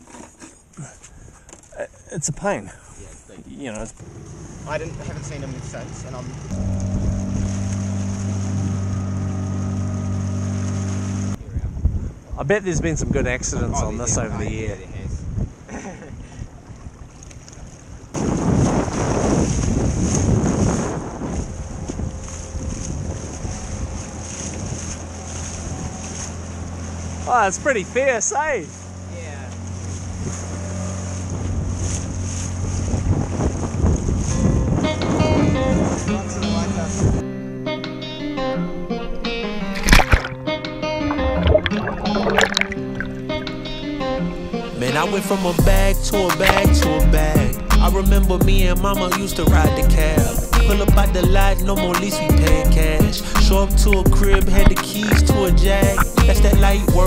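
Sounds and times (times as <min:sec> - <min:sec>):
small outboard motor running: 0:03.9 - 0:11.4, 0:21.5 - 0:34.2, 0:41.0 - 0:43.5
water splashing along hull: 0:06.2 - 0:11.4, 0:16.4 - 0:34.9, 0:39.7 - 0:47.7, 0:49.0 - 0:57.0
wind on microphone: 0:06.5 - 0:10.0, 0:11.1 - 0:26.2, 0:29.8 - 0:36.2, 0:36.8 - 0:37.2.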